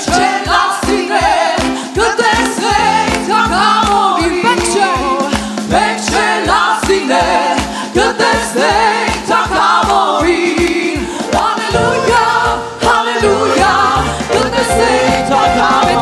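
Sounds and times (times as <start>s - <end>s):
backing singers: 0.0s - 16.0s
keyboard: 0.0s - 16.0s
steady quick beat: 0.0s - 16.0s
woman singing lead: 0.0s - 16.0s
bass line: 11.5s - 16.0s.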